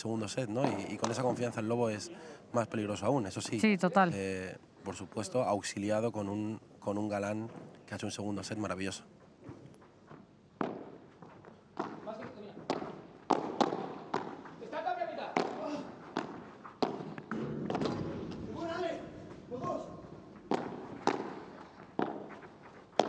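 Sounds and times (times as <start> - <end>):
ball bouncing on court: 10.6 - 11.0, 11.8 - 14.6, 15.3 - 18.4, 20.4 - 23.0
padel ball hit by rackets: 12.7 - 14.4, 15.4 - 18.2, 20.5 - 22.4.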